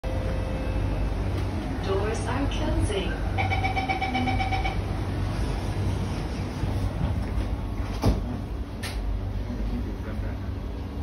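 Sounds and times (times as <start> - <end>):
train air-conditioning hum: 0.0 - 11.0.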